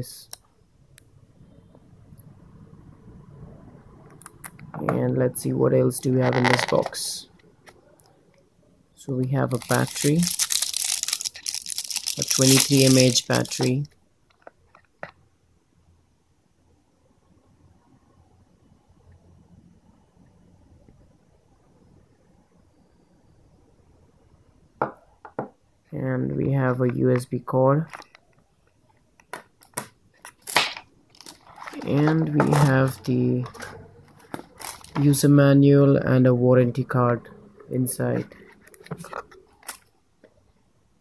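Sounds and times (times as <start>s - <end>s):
cardboard packaging scraping: 9.5s - 13.8s, 31.2s - 32.9s, 33.6s - 35.0s
plastic bag crinkling: 9.5s - 13.8s, 30.3s - 32.7s, 34.2s - 35.2s.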